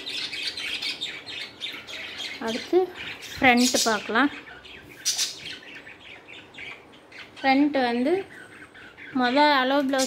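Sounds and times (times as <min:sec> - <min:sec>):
bird squawking: 0:00.0 - 0:07.6.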